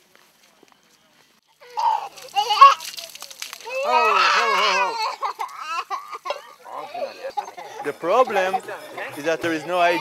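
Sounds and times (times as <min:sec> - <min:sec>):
water pouring: 0:01.6 - 0:06.4
small child crying: 0:01.6 - 0:07.5.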